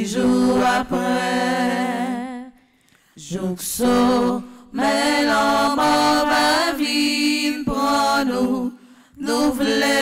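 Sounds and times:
women singing a chant: 0:00.0 - 0:02.6, 0:03.2 - 0:10.0.

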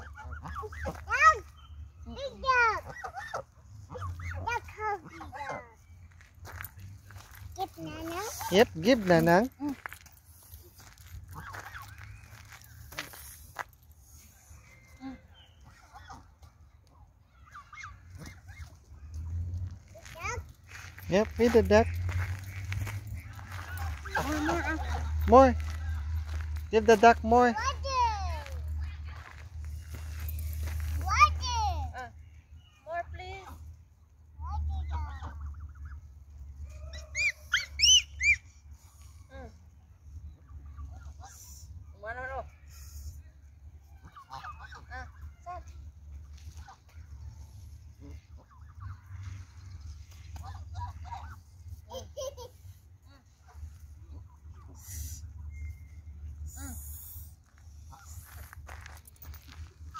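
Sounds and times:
geese honking: 0:00.0 - 0:01.3, 0:11.3 - 0:12.1, 0:20.7 - 0:26.5, 0:44.0 - 0:45.4
geese calling: 0:00.0 - 0:06.2, 0:11.1 - 0:13.4, 0:15.4 - 0:16.6, 0:20.7 - 0:27.5, 0:43.9 - 0:45.4, 0:46.2 - 0:51.8.

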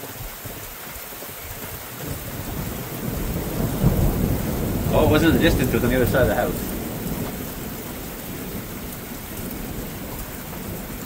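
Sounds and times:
steady rain: 0:00.0 - 0:11.0
thunder rumbling: 0:02.0 - 0:11.0.

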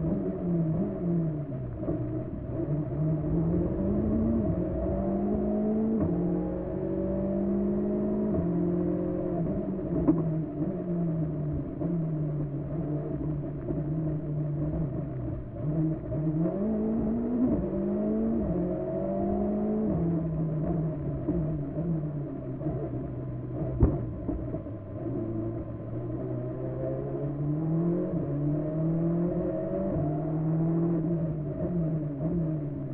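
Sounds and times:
car engine from inside cabin: 0:00.0 - 0:32.9.

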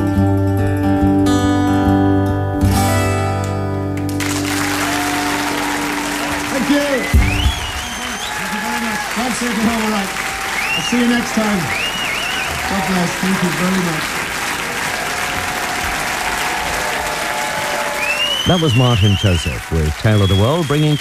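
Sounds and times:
audience applauding: 0:04.0 - 0:21.0
voices calling out: 0:04.7 - 0:21.0.

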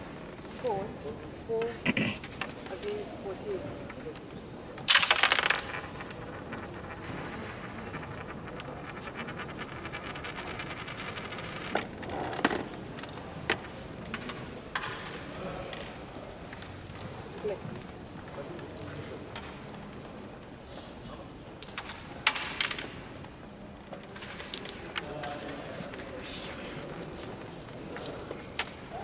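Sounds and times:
carrom pieces clacking: 0:01.5 - 0:03.1, 0:03.8 - 0:20.6, 0:21.5 - 0:29.0.

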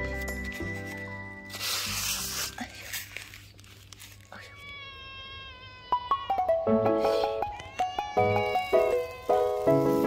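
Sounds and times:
cat meowing: 0:04.4 - 0:09.7.

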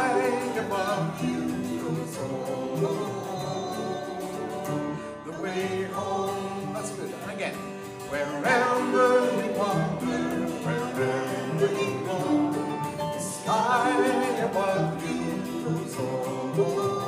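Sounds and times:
acoustic guitar: 0:00.0 - 0:17.0
voices singing: 0:00.0 - 0:17.0.

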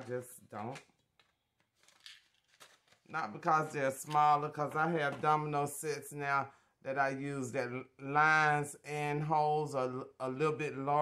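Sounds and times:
cardboard package rustling: 0:00.6 - 0:04.4.

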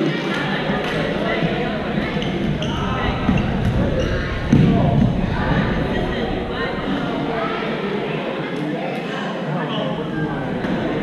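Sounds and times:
voices chattering in echoing hall: 0:00.0 - 0:11.0
loud thud: 0:00.9 - 0:07.7.

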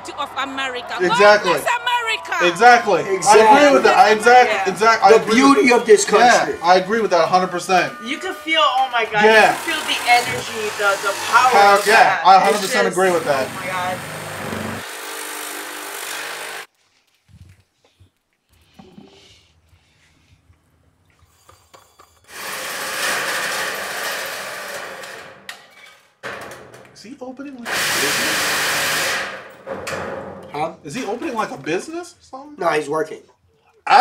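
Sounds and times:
handheld power drill running: 0:02.7 - 0:16.7, 0:22.2 - 0:25.3, 0:27.7 - 0:29.5
loud rushing hiss: 0:27.7 - 0:29.3.

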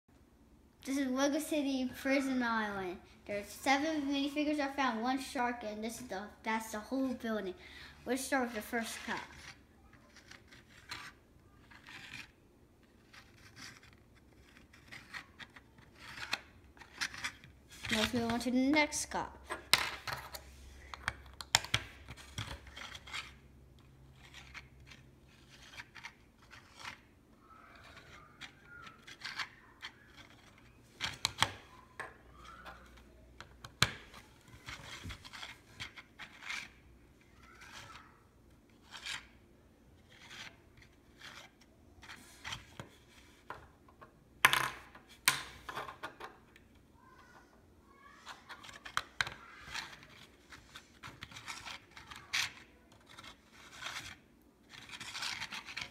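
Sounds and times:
soft rubbing of plastic: 0:08.8 - 0:18.4, 0:22.1 - 0:33.4, 0:34.1 - 0:43.6, 0:47.3 - 0:55.9.

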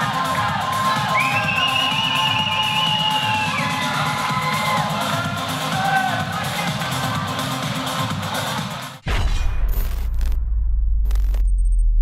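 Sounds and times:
crowd cheering: 0:00.0 - 0:07.3
arena music: 0:00.0 - 0:09.0.

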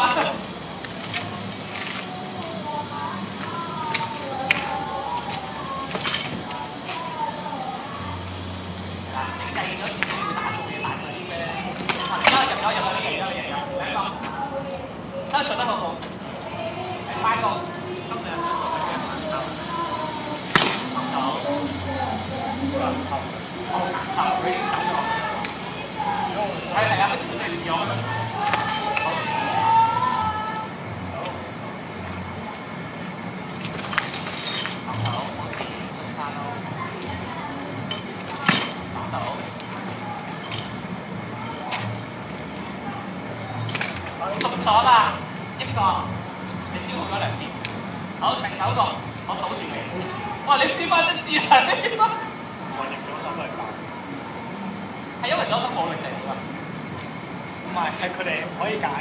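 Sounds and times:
people talking: 0:00.0 - 0:33.1, 0:34.4 - 0:59.0.

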